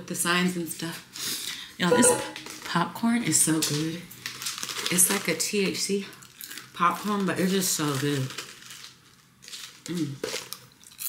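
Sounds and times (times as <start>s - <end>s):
person chewing popcorn: 8.4s - 11.0s.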